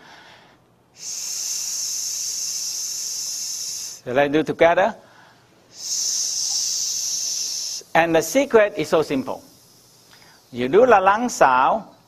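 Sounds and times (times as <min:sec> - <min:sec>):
man breathing out a hissing sss: 0:00.0 - 0:04.1, 0:05.0 - 0:08.0, 0:09.4 - 0:10.6.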